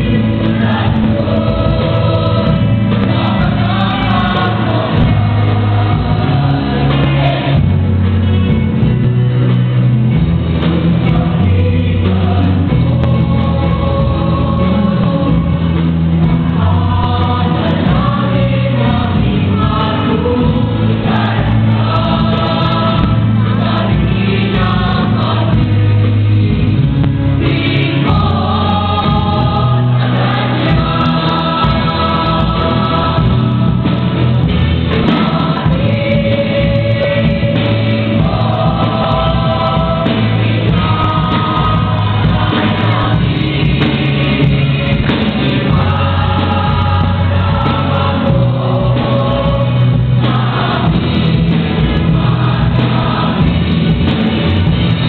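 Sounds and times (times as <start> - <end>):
choir singing a hymn: 0.0 - 55.0
low steady accompaniment: 0.0 - 55.0.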